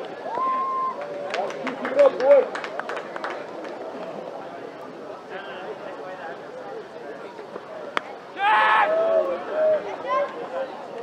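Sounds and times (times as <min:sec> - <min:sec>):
murmur of distant voices: 0:00.0 - 0:11.0
scattered claps: 0:01.0 - 0:04.2.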